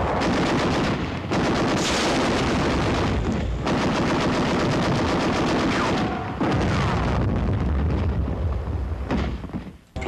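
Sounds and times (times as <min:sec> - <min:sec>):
rapid gunfire: 0:00.0 - 0:07.0.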